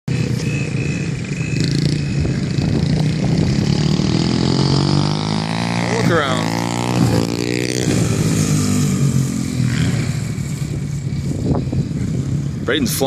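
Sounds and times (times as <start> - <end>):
dirt bike engine revving: 0.1 - 12.8.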